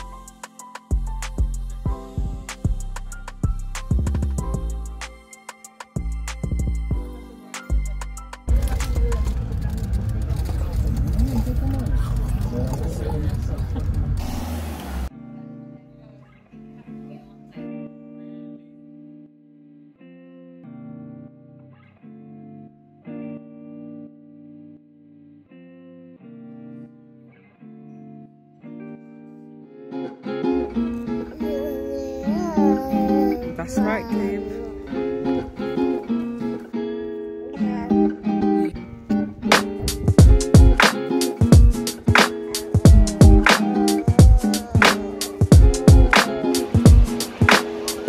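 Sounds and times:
plucked guitar music: 0:00.0 - 0:10.0, 0:14.3 - 0:48.0.

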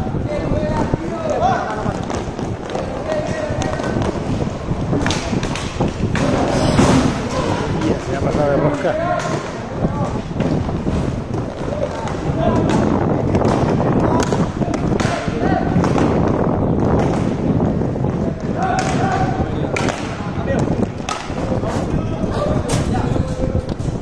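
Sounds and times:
skate wheels rolling: 0:00.0 - 0:24.0
sticks and puck clacking: 0:00.6 - 0:06.5, 0:07.2 - 0:22.0.

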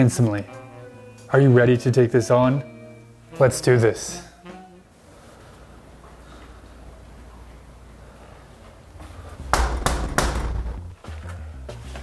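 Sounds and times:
fist knocking on door: 0:09.5 - 0:10.8.

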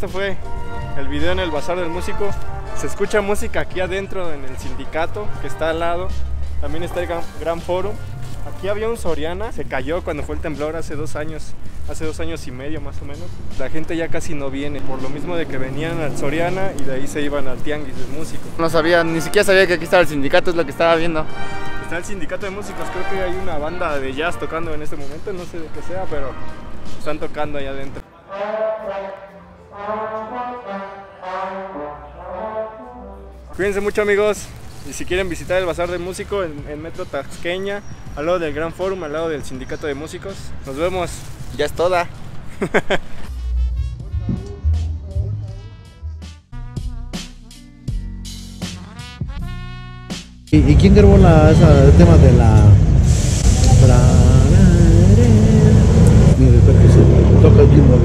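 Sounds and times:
brass section playing sustained chords: 0:00.4 - 0:03.4, 0:28.0 - 0:34.1, 0:43.3 - 0:47.1
people talking: 0:01.0 - 0:21.2, 0:33.5 - 0:42.1, 0:44.2 - 0:45.7, 0:50.6 - 0:58.0
low rumble: 0:43.4 - 0:46.3, 0:50.6 - 0:57.7.

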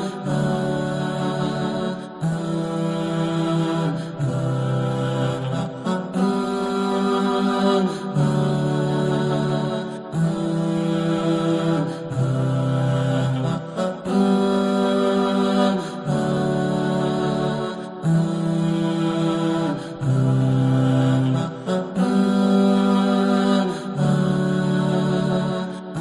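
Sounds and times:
voices singing a cappella: 0:00.0 - 0:26.0.

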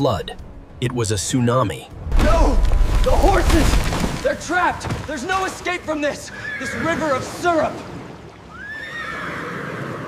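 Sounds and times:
horse whinnying: 0:06.3 - 0:07.0, 0:08.5 - 0:10.0.

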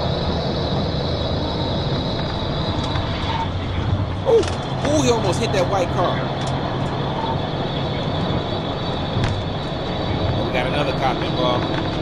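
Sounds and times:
low engine drone: 0:00.0 - 0:12.0
road and wind noise: 0:00.0 - 0:12.0.

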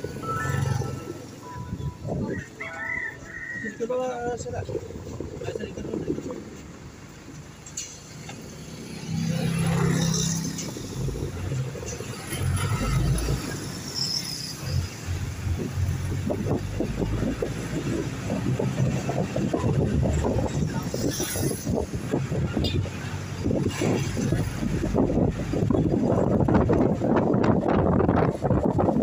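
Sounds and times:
vehicle engine and road rumble: 0:00.0 - 0:29.0.

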